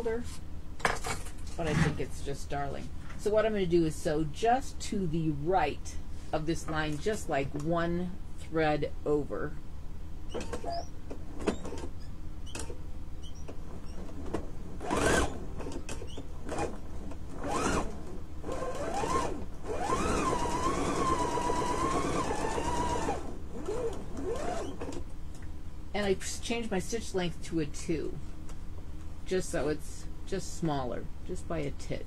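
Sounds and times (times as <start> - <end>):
sewing machine stitching: 13.9 - 25.0.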